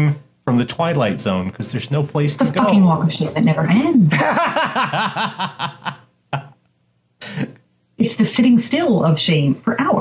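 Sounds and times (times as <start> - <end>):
man laughing: 4.1 - 6.6.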